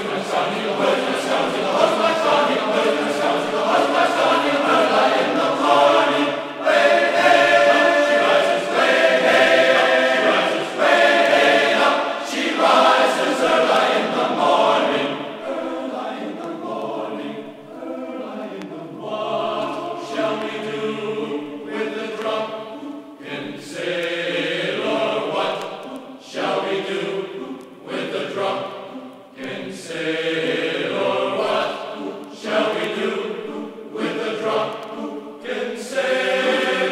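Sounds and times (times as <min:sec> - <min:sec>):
choir singing: 0:00.0 - 0:36.9.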